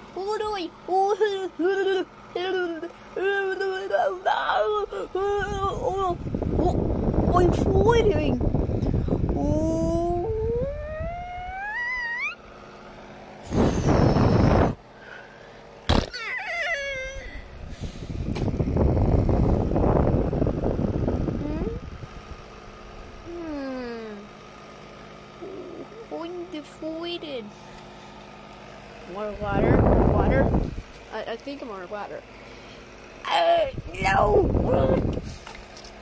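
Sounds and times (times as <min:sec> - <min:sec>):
child making character noises: 0:00.2 - 0:08.4, 0:09.4 - 0:12.4, 0:33.2 - 0:35.1.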